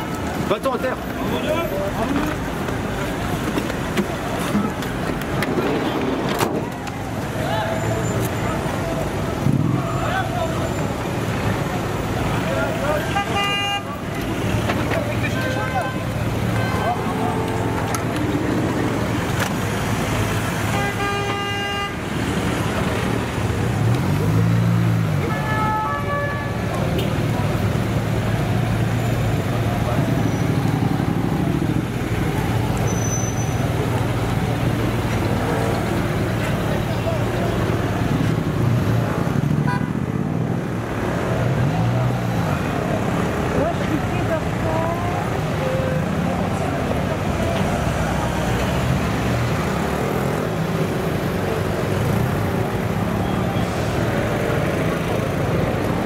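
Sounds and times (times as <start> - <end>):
car horns tooting: 12.8 - 14.2, 20.5 - 22.1, 25.2 - 27.3.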